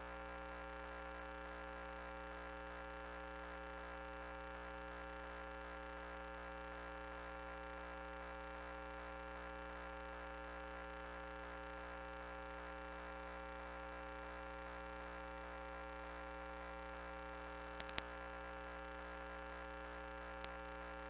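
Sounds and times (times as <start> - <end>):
faint electrical hum: 0.0 - 21.0.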